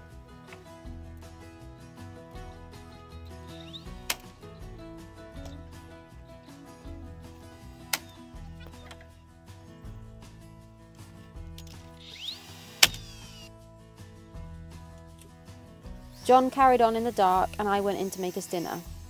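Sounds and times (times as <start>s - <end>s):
background music with pulsing bass: 0.0s - 18.0s
cordless drill whirring: 7.3s - 8.3s, 11.8s - 13.5s, 16.1s - 16.6s.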